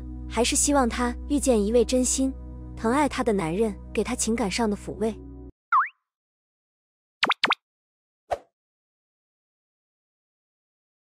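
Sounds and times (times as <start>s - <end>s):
cartoon swooping pops: 7.2s - 7.6s.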